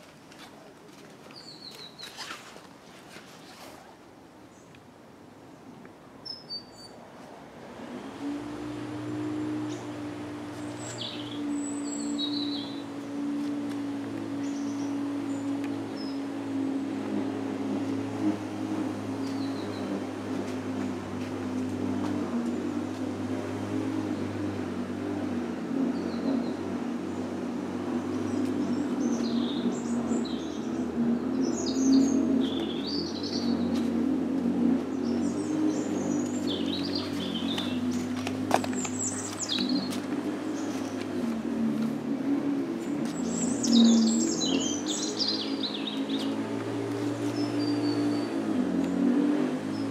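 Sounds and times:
small birds chirping: 0:01.2 - 0:02.4, 0:06.2 - 0:07.0, 0:08.9 - 0:18.1, 0:19.0 - 0:21.4, 0:25.8 - 0:34.1, 0:34.8 - 0:42.0, 0:42.7 - 0:49.9
low mechanical drone: 0:07.4 - 0:49.9.

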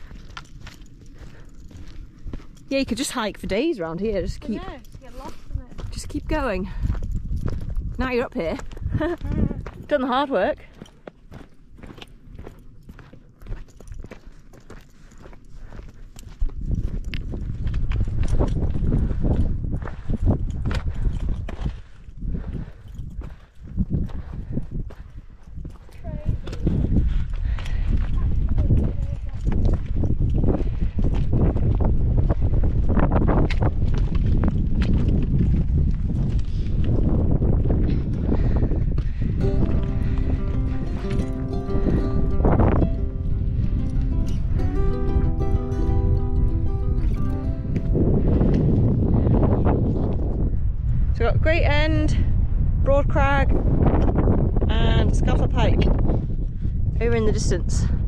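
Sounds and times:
footsteps on grass and rock: 0:00.0 - 0:03.4, 0:04.0 - 0:37.7, 0:39.0 - 0:50.4
wind rumbling on microphone: 0:00.0 - 0:58.0
music: 0:39.4 - 0:48.6.

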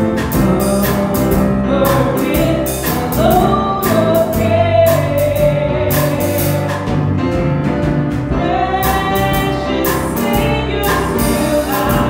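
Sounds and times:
choir singing gospel: 0:00.0 - 0:06.8, 0:08.3 - 0:12.0
instrumental backing: 0:00.0 - 0:12.0.

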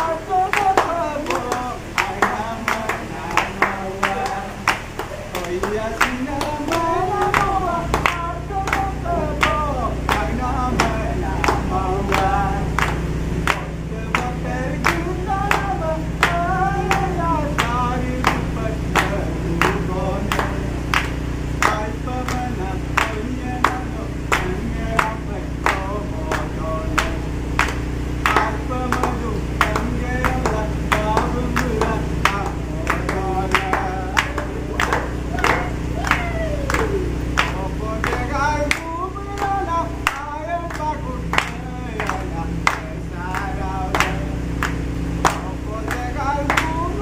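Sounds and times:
men clapping in rhythm: 0:00.0 - 0:47.0
men singing together: 0:00.0 - 0:47.0.

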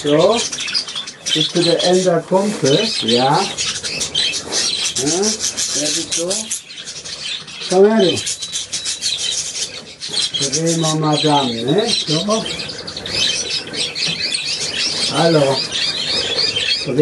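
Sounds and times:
budgerigars chattering and warbling: 0:00.0 - 0:17.0.

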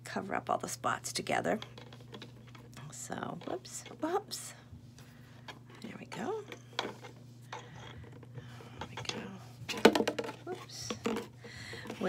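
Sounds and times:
plastic bottle clattering on table: 0:09.7 - 0:12.0.

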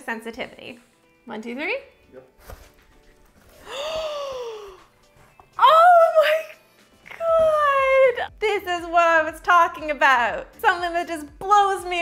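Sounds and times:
person gasping breathily: 0:03.5 - 0:04.9.

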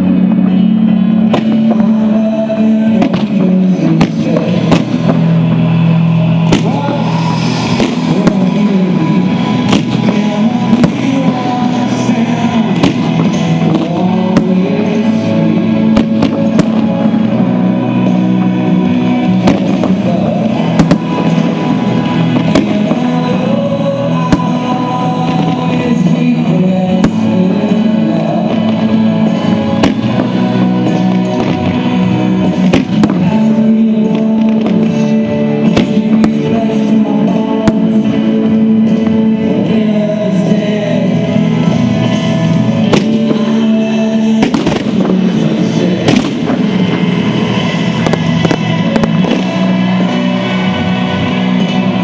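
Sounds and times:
fireworks bangs and cracks: 0:00.0 - 0:52.0
music playing: 0:00.0 - 0:52.0.

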